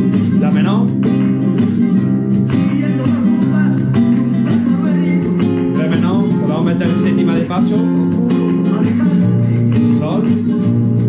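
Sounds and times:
guitar strumming chords: 0.0s - 11.0s.

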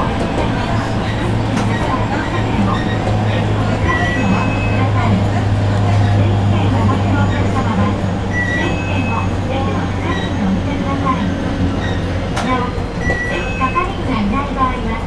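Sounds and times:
electric train hum: 0.0s - 15.0s.

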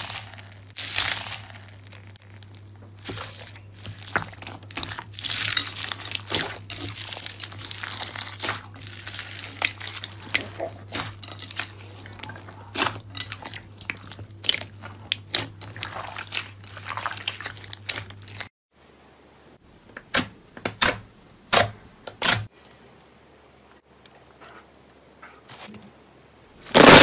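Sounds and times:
crackling and popping beads: 0.0s - 18.5s, 26.6s - 27.0s.

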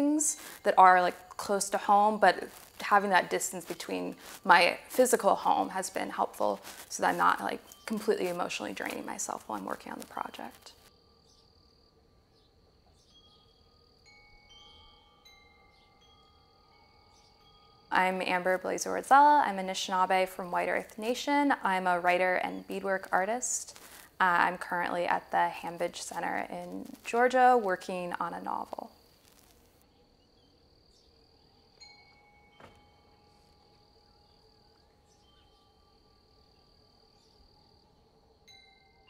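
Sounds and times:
high-pitched insect trill: 0.0s - 39.0s
ringing chime tones: 13.0s - 19.0s, 31.8s - 34.4s, 38.5s - 39.0s.

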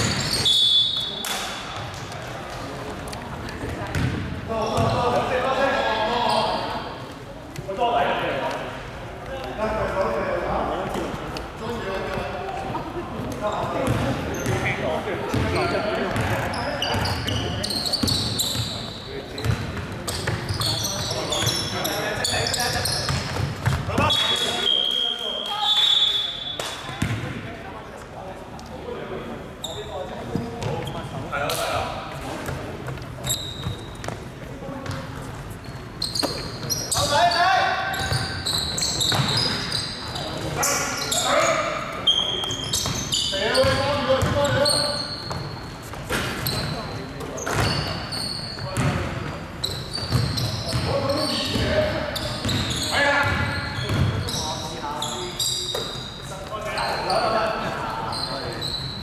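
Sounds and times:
basketball bouncing on wooden court: 3.7s - 5.0s, 15.3s - 17.4s, 19.4s - 20.7s, 22.8s - 24.1s, 27.0s - 27.4s, 39.1s - 39.6s, 43.6s - 44.6s, 48.6s - 49.1s, 50.0s - 50.9s, 52.4s - 54.3s.

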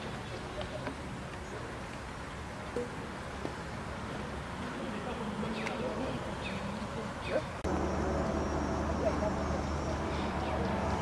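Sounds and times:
faint voices: 0.0s - 11.0s
steady low hum: 7.5s - 11.0s.

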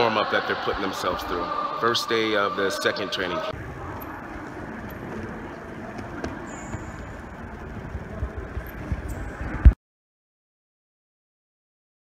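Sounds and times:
crowd hubbub: 0.0s - 9.8s.

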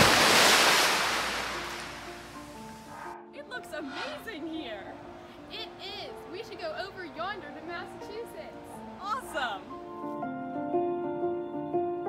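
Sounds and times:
ocean surf rushing: 0.0s - 2.5s.

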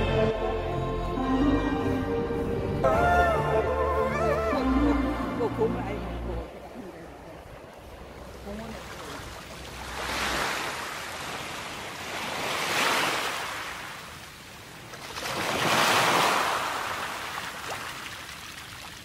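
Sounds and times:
sea waves breaking on pebbly shore: 8.1s - 19.0s.

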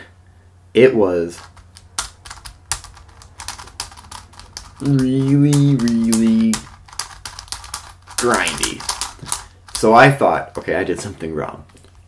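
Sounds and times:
plastic puzzle cube clicking: 1.4s - 10.0s.

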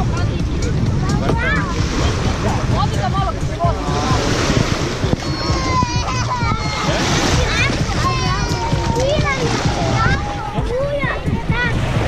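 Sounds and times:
small waves washing on shore: 0.0s - 12.0s
wind buffeting microphone: 0.0s - 12.0s.

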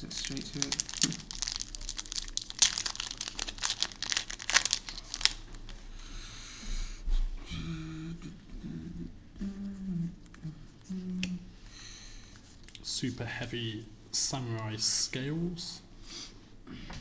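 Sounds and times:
handling of cards: 0.0s - 5.7s
foil wrapper crinkling: 0.0s - 5.8s.

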